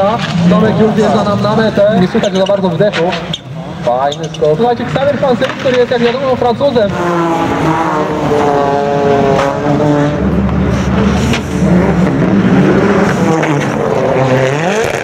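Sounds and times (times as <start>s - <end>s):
rally car engines revving: 0.0s - 15.0s.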